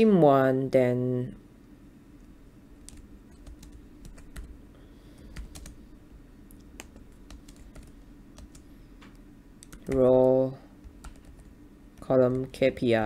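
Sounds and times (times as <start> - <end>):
low steady hum: 0.0 - 13.0
keyboard typing: 2.8 - 4.6, 5.2 - 5.8, 6.5 - 8.7, 9.6 - 12.6.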